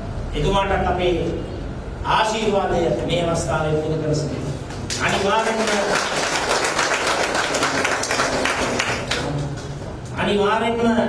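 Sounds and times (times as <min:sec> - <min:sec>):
audience applauding: 0:04.8 - 0:09.7.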